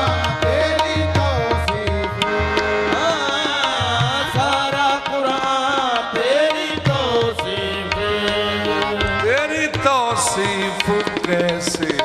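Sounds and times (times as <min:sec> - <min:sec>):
harmoniums holding chords: 0:00.0 - 0:12.0.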